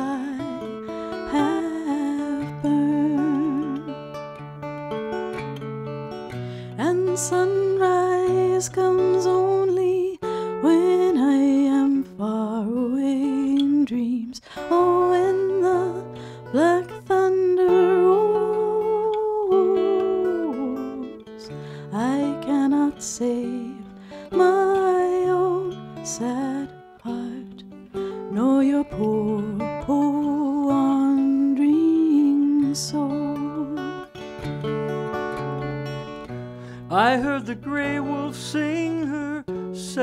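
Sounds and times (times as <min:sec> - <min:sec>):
acoustic guitar picked: 0:00.0 - 0:40.0
person singing slow folk song: 0:00.0 - 0:40.0.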